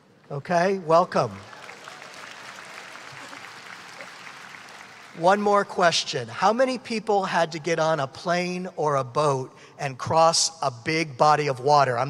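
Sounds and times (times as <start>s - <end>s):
audience applauding: 1.1s - 5.9s.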